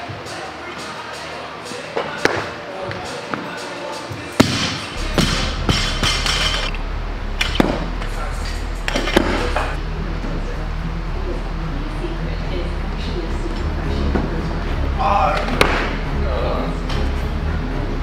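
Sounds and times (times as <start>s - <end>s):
metal plates clanking: 5.0s - 9.8s.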